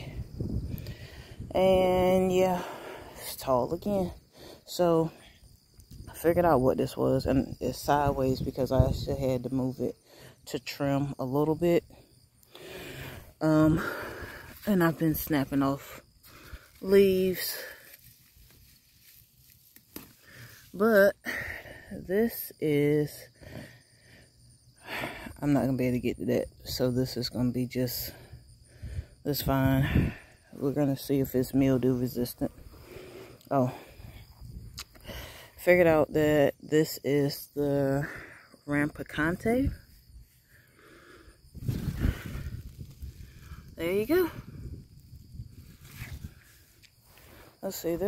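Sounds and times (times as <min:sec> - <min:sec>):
leaves rustling: 0:12.1 - 0:21.8, 0:39.8 - 0:48.0.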